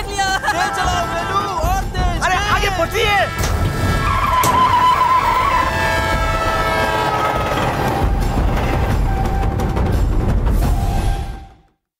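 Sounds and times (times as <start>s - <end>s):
tractor rumbling: 0.5s - 10.2s.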